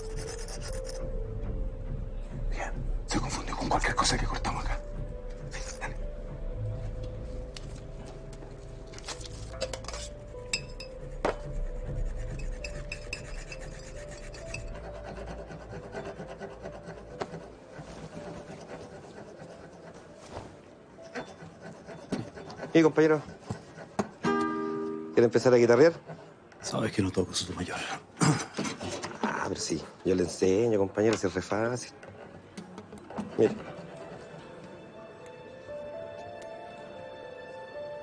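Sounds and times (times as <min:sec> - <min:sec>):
rasping scraping: 0:09.0 - 0:20.2.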